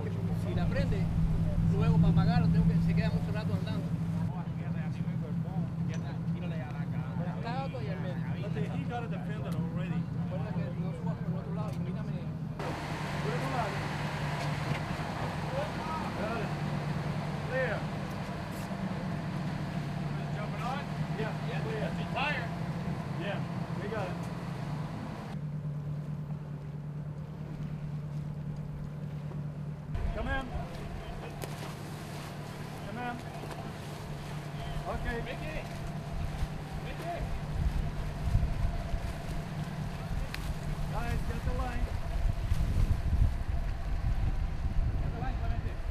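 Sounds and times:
boat engine droning: 0:00.0 - 0:45.9.

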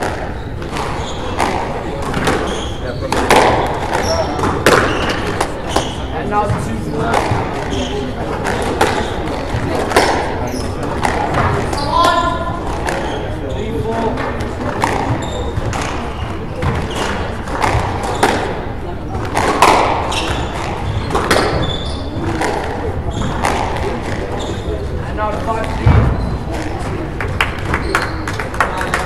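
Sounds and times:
squash ball knocks: 0:00.0 - 0:07.7, 0:08.3 - 0:13.1, 0:14.0 - 0:24.4, 0:25.6 - 0:26.9
shoes squeaking on wooden floor: 0:00.0 - 0:14.2, 0:14.8 - 0:29.0.

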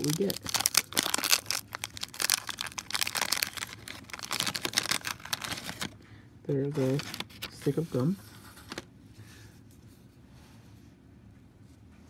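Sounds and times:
paper wrapper crinkling and tearing: 0:00.0 - 0:06.0, 0:06.7 - 0:07.8.

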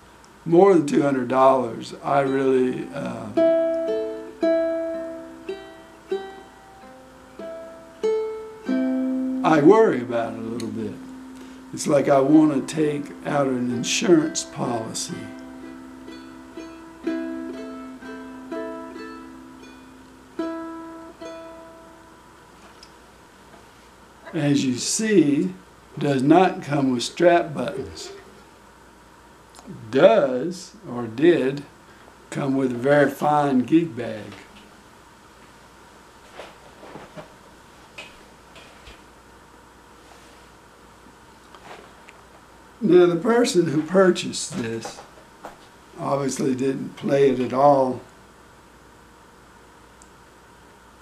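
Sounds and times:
ukulele picked notes: 0:02.1 - 0:22.2.

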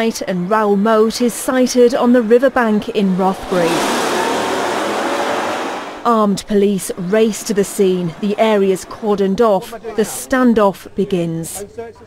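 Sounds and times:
vehicle driving off at speed: 0:01.5 - 0:06.2.

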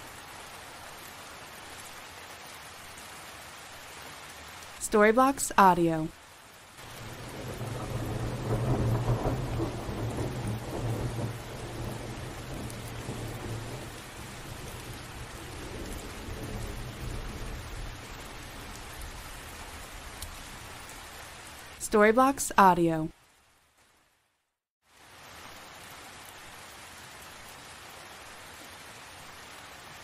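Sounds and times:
steady rain: 0:00.0 - 0:30.0
thunder rumbling: 0:06.8 - 0:20.7.

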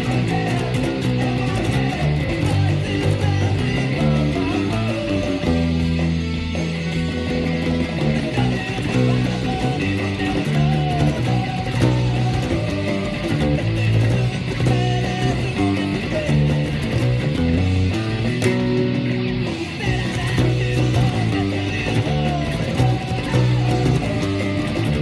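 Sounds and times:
distorted guitars: 0:00.0 - 0:25.0
drums: 0:00.0 - 0:25.0
electric bass line: 0:00.0 - 0:25.0.

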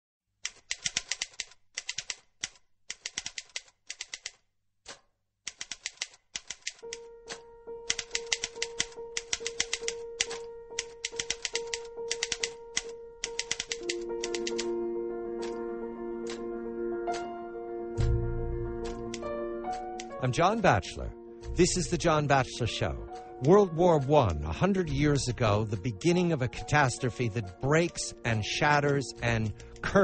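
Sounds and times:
typewriter keys clattering: 0:00.5 - 0:04.4, 0:05.5 - 0:14.7, 0:15.4 - 0:15.6, 0:18.8 - 0:20.2
music bed with chords: 0:13.8 - 0:30.0.

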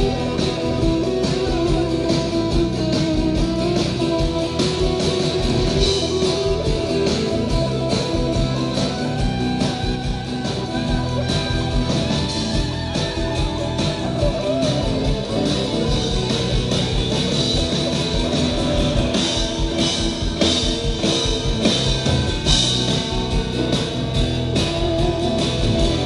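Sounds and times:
live rock band instrumental: 0:00.0 - 0:26.0.

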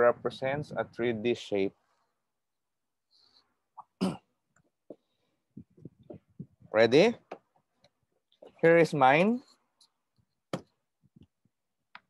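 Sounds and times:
person coughing: 0:03.9 - 0:04.4.

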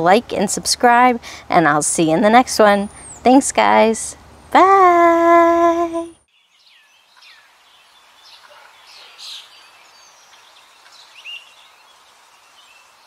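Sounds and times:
birds chirping: 0:02.2 - 0:04.6, 0:05.5 - 0:13.0
faint steady hiss: 0:05.2 - 0:13.0.

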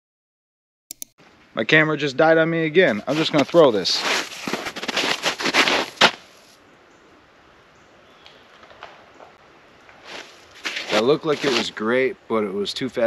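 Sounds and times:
footsteps crunching in snow: 0:02.9 - 0:06.6, 0:10.0 - 0:11.9.

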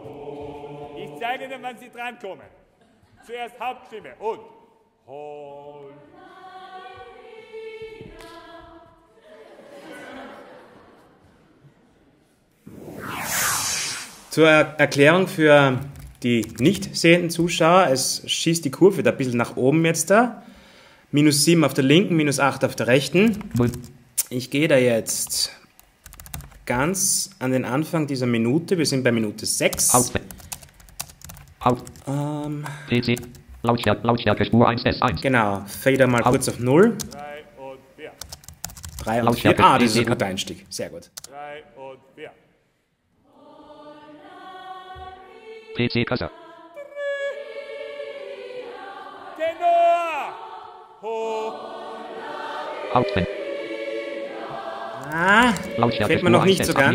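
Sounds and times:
choir recording: 0:00.0 - 0:02.4, 0:03.2 - 0:12.0, 0:39.1 - 0:40.6, 0:41.3 - 0:42.6, 0:43.2 - 0:56.9
rush of hiss-like noise: 0:12.7 - 0:15.0
computer keyboard clicking: 0:15.9 - 0:16.8, 0:25.8 - 0:26.6, 0:29.7 - 0:33.4, 0:38.2 - 0:39.1.

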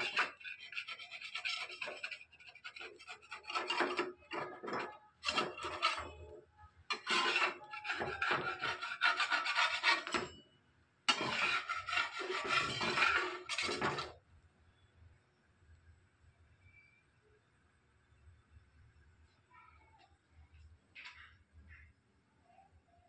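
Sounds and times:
wooden spatula scraping a pan: 0:00.0 - 0:10.4, 0:11.1 - 0:14.2.

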